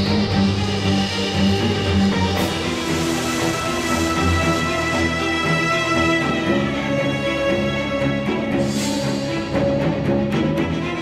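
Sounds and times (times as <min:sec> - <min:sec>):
background music with held chords: 0:00.0 - 0:11.0.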